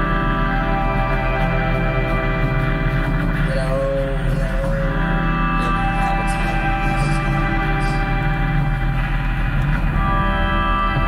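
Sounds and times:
band playing droning music: 0.0 - 11.0.

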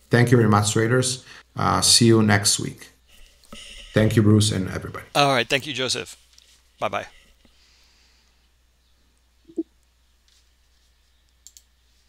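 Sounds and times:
faint clicks: 11.2 - 11.7.

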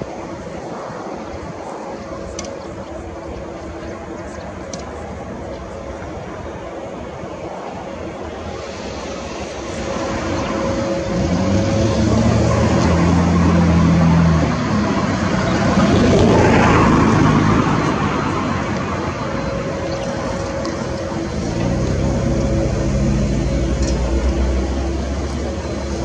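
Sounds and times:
jet engines running: 0.0 - 26.0
low hum: 0.0 - 26.0
rushing noise: 0.0 - 26.0.

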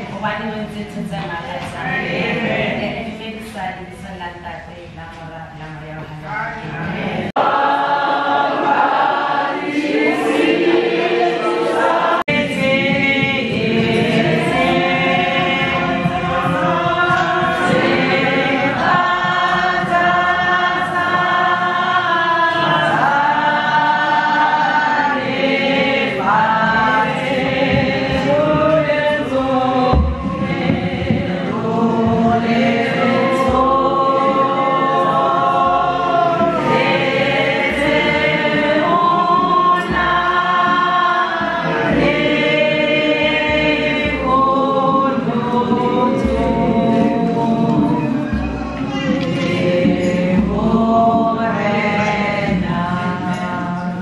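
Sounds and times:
choir singing a hymn: 0.0 - 3.4, 6.7 - 54.0
low beat: 8.0 - 53.8.

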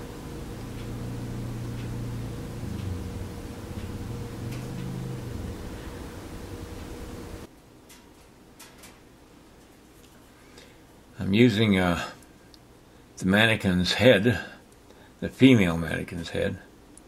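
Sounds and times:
engine droning: 0.0 - 7.5.

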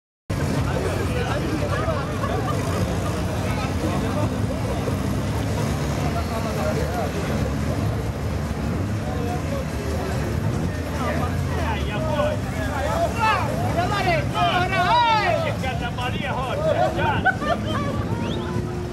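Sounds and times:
car engines idling: 0.3 - 18.9
spectators talking: 0.3 - 18.9.

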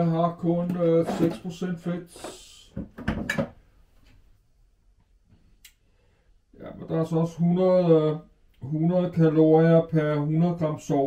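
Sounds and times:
faint click: 5.6 - 5.8.

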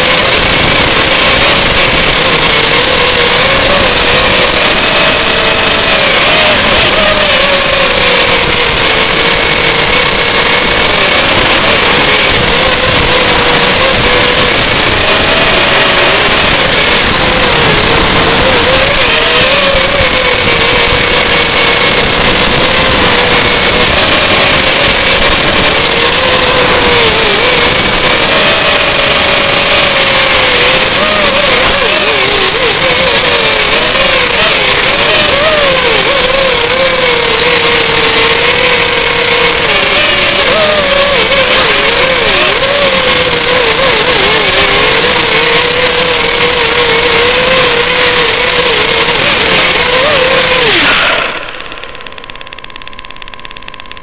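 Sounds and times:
drone motors whining: 0.0 - 54.0
steady high-pitched tone: 47.2 - 54.0.

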